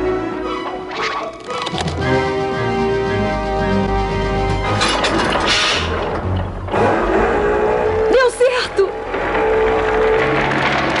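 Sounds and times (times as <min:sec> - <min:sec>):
dramatic music: 0:00.0 - 0:11.0.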